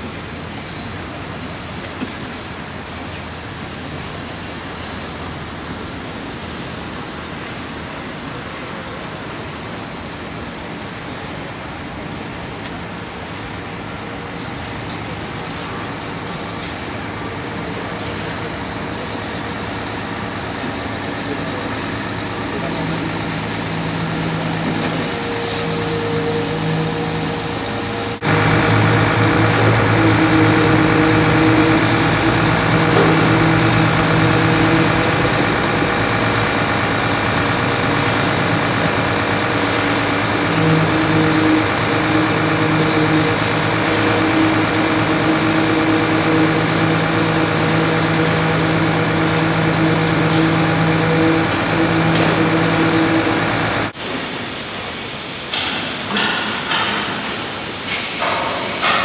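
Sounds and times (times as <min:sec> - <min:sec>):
heavy machinery engines running: 0:00.0 - 0:59.0.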